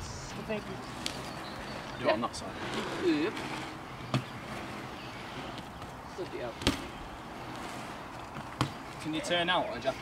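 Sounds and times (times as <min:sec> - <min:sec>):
bike tyres rolling on concrete: 0:00.1 - 0:10.0.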